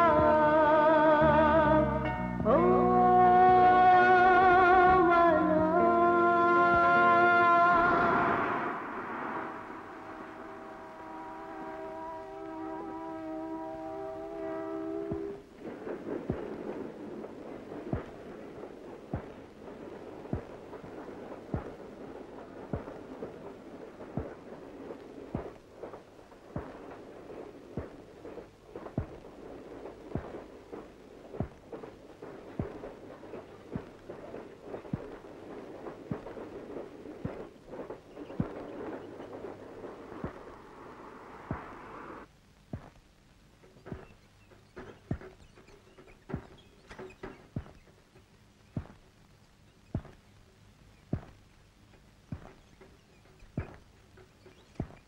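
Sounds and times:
low hiss: 0:00.0 - 0:55.0
sharp clicks and knocks: 0:42.7 - 0:55.0.

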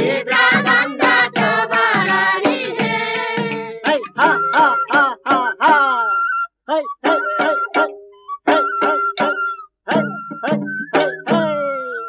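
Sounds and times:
folk song singing: 0:00.0 - 0:06.0.

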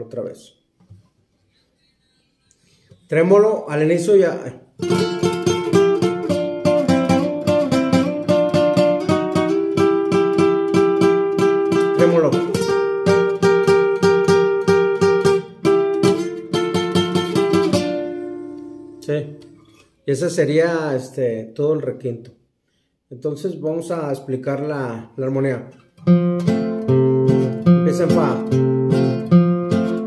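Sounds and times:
classical guitar tremolo melody: 0:04.8 - 0:20.0, 0:25.8 - 0:30.0.

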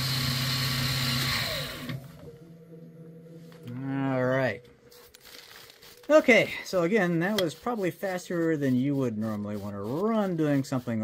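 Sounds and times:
spindle motor winding down: 0:00.0 - 0:02.3
faint steady hum: 0:01.6 - 0:06.7.

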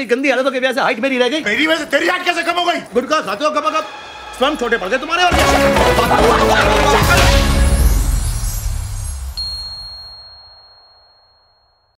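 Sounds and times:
background music: 0:02.8 - 0:09.4
high pure ding: 0:08.6 - 0:12.0.

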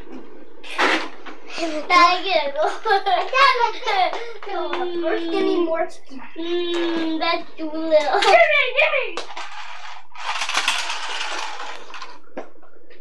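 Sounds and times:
toy car whirring on tiles: 0:09.2 - 0:12.2.

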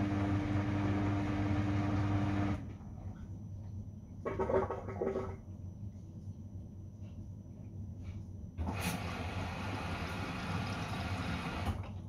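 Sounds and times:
steady low hum: 0:00.0 - 0:08.7.

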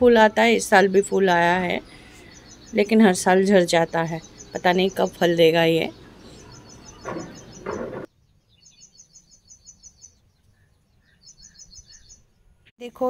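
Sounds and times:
small bird chirping trills: 0:00.4 - 0:12.7.

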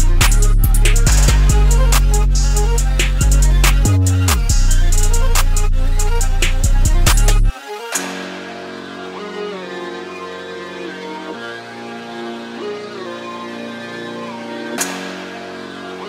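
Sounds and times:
melodic loop with gliding notes: 0:00.0 - 0:16.0
sharp hit: 0:01.0 - 0:03.9.

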